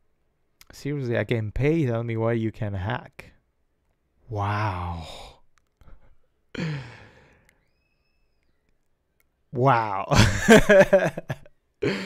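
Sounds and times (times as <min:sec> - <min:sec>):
man sighing: 0:04.3 - 0:07.5
man coughing: 0:06.6 - 0:07.0.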